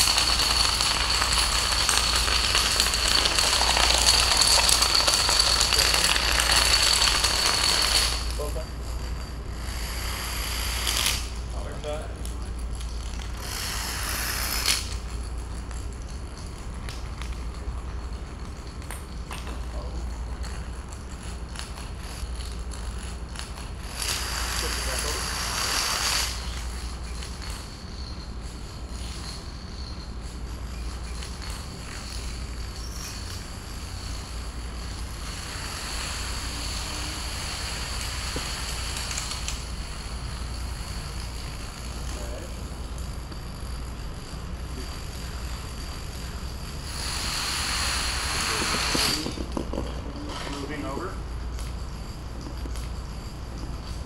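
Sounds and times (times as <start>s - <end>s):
plastic dominoes clattering: 0.0s - 8.6s, 12.1s - 17.7s, 19.5s - 27.7s, 34.1s - 42.6s, 46.4s - 51.2s.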